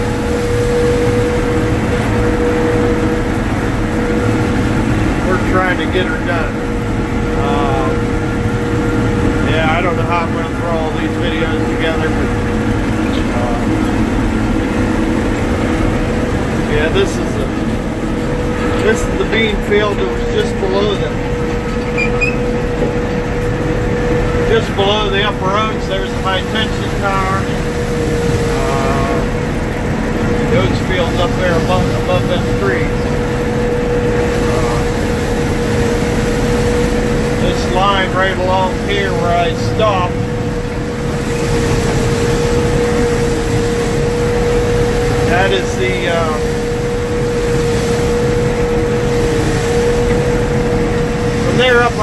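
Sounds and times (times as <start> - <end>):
combine harvester low drone: 0.0 - 52.0
steady machine whine: 0.0 - 52.0.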